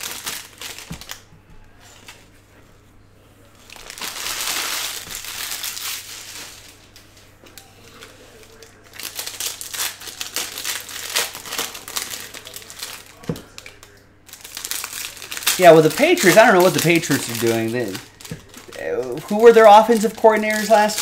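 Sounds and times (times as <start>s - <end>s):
foil wrapper crinkling: 0.0s - 1.3s, 3.6s - 21.0s.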